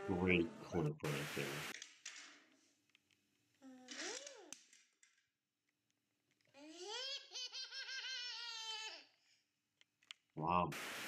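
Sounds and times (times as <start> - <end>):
toddler laughing: 6.6 - 9.2.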